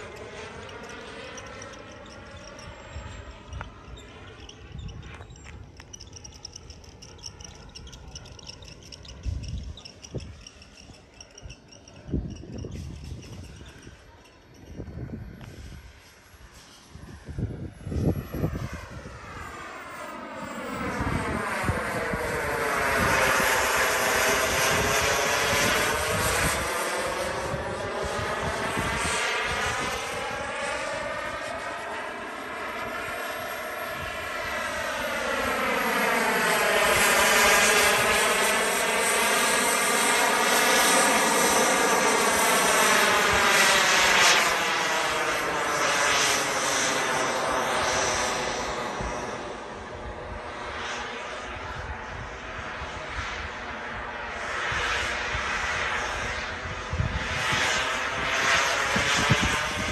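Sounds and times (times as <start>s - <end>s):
model jet turbine flying past: 0.0s - 59.9s.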